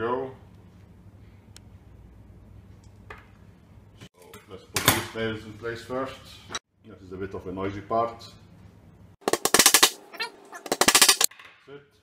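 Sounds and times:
hammer driving nails into wood: 9.2s - 10.0s.

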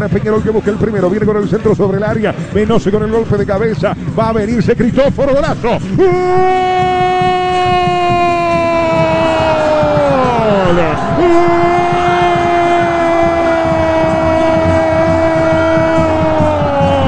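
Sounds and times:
commentator shouting goal: 5.1s - 17.0s.

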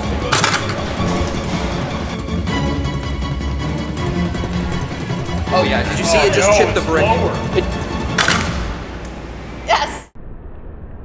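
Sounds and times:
background music: 0.0s - 10.1s
person speaking: 5.5s - 7.7s.

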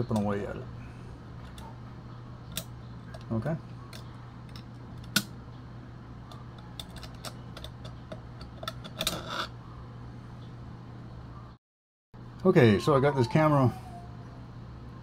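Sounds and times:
steady low hum: 0.0s - 11.6s, 12.2s - 15.0s
file scraping metal contacts: 6.6s - 9.6s.

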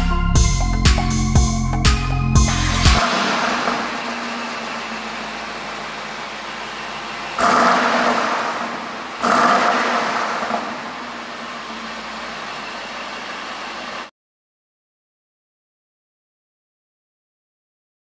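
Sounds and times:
car engine idling: 2.4s - 14.1s.

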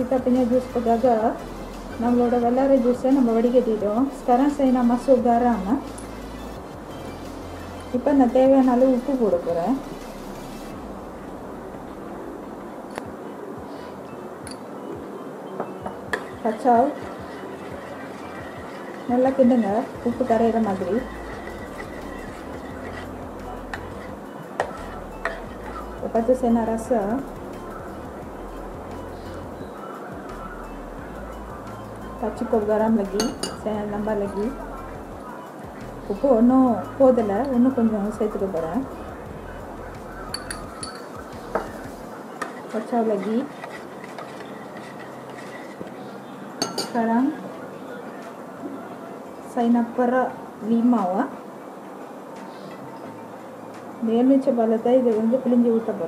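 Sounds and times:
steady low hum: 0.0s - 46.3s
spoon stirring juice in a pot: 16.1s - 26.2s, 40.2s - 47.0s
spoon clinking against metal pot: 33.2s - 33.7s, 40.3s - 41.8s, 46.6s - 47.0s
metallic clinks against pot: 40.3s - 41.1s.

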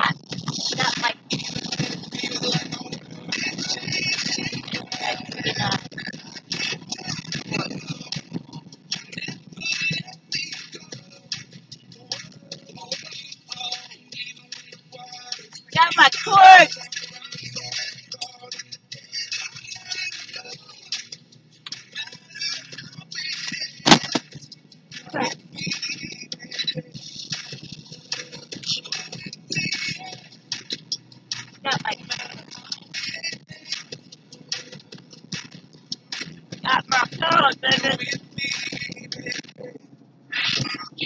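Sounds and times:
car radio voices and music: 0.0s - 41.0s
sharp knock: 23.9s - 24.2s.

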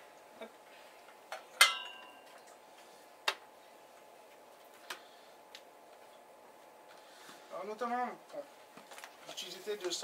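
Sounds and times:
ringing clink: 1.6s - 2.2s.

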